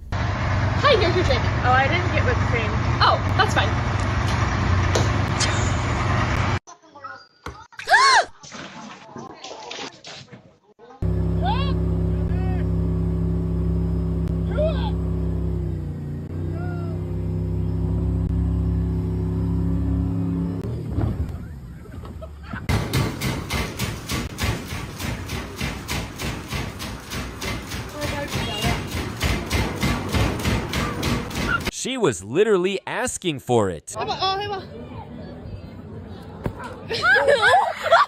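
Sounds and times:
motorboat engine droning: 0:11.0 - 0:22.6
steady rumbling with low hum: 0:11.0 - 0:31.8.

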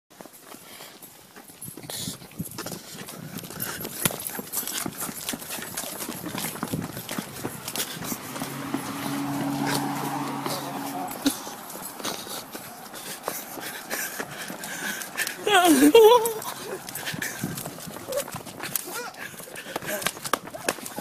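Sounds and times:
footsteps on concrete: 0:00.1 - 0:21.0.

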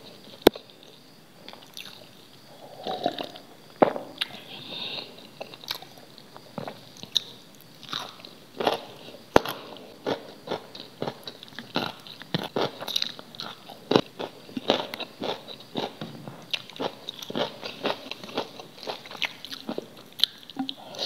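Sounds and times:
carrot crunching and chewing: 0:06.6 - 0:20.8.

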